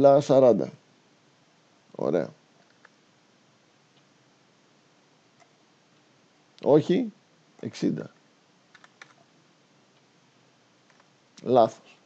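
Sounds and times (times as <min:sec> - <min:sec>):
faint keyboard keystrokes: 0:02.6 - 0:03.0, 0:08.1 - 0:09.2, 0:10.8 - 0:11.2.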